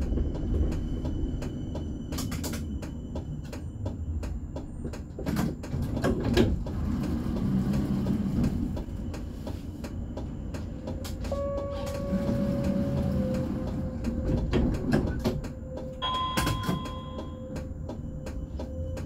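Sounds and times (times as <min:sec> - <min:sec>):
tram low rumble: 0:00.0 - 0:19.0.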